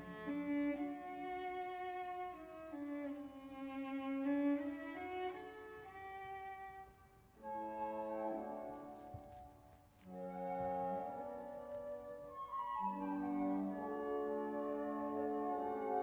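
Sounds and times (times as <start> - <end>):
orchestral string music: 0.0 - 16.0.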